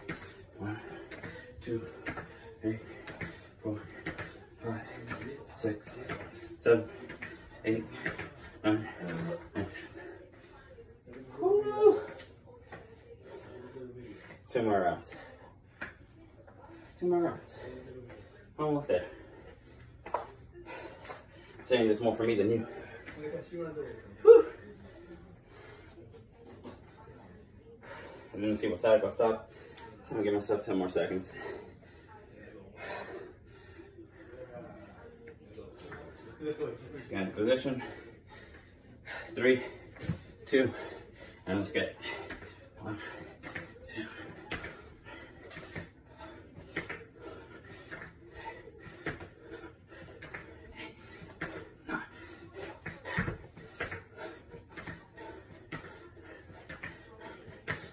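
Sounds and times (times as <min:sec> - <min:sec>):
man breathing: 0:31.1 - 0:35.1, 0:37.5 - 0:57.9
feet thudding on exercise mat: 0:42.0 - 0:57.9.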